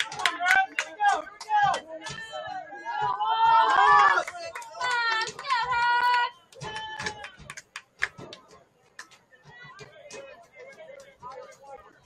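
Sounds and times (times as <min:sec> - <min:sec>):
players and spectators shouting: 0:00.0 - 0:07.5.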